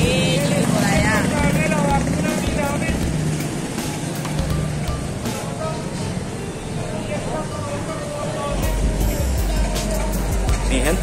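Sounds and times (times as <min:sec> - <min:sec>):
motorcycle engines running: 0:00.0 - 0:06.4, 0:07.1 - 0:11.0
voices of passers-by: 0:00.0 - 0:11.0.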